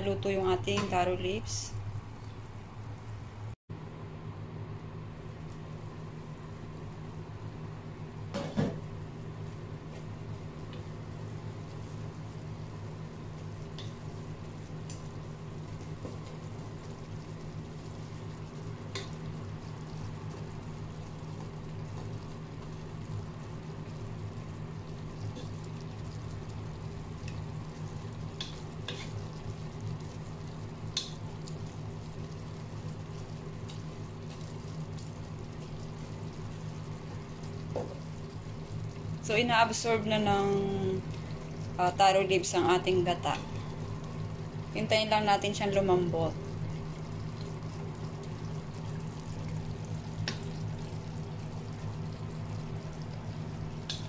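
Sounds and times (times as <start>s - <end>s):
pot simmering and bubbling: 4.8s - 54.0s.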